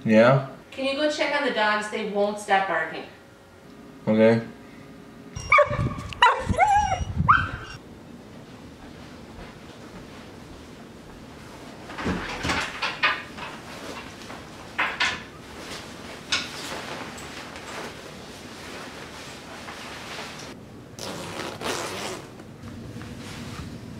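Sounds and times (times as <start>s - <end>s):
dog barking: 5.5s - 7.7s
coat rustling and knocking: 11.6s - 20.4s.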